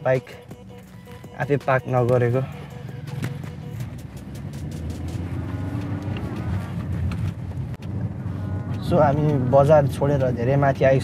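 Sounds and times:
car engine and tyres humming: 0.0 - 11.0.

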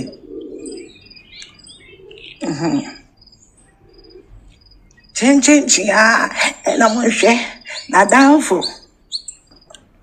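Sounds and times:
faint high chirps: 0.0 - 5.2, 6.8 - 9.8.

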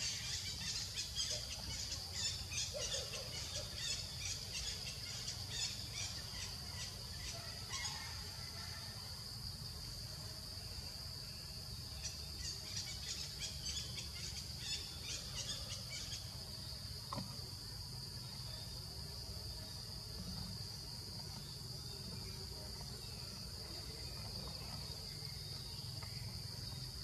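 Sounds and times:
insects droning: 0.0 - 27.0.

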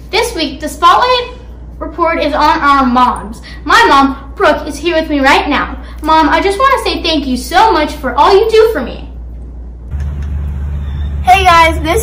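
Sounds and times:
steady low rumble: 9.2 - 12.0.

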